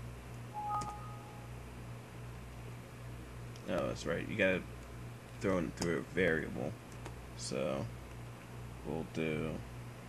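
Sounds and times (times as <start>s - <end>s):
low background hum: 0.0s - 10.0s
two-tone electronic beep: 0.6s - 1.6s.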